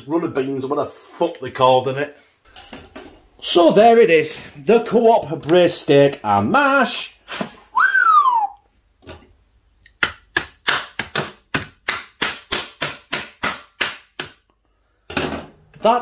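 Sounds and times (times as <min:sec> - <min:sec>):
plastic film being stabbed: 0:10.5 - 0:14.2.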